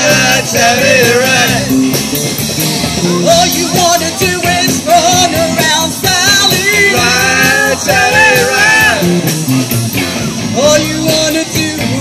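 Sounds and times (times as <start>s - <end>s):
singing voices: 0.0s - 2.0s, 3.0s - 9.3s, 10.4s - 12.0s
live rock band playing: 0.0s - 12.0s
stepping bass line: 0.0s - 12.0s.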